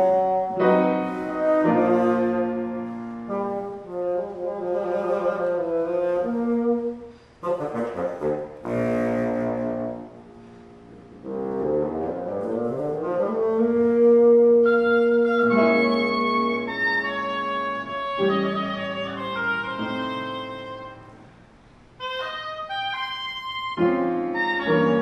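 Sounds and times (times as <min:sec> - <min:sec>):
oboe: 0:00.0 - 0:10.2, 0:11.2 - 0:21.3, 0:22.0 - 0:25.0
bassoon: 0:00.0 - 0:21.3, 0:22.0 - 0:25.0
piano: 0:00.0 - 0:25.0.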